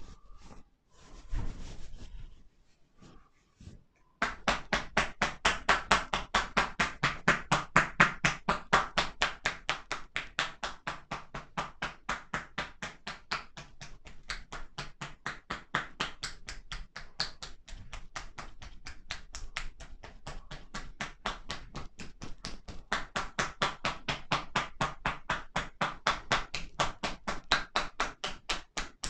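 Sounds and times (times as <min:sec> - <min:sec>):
hands tapping on back: 0:04.2 - 0:29.0.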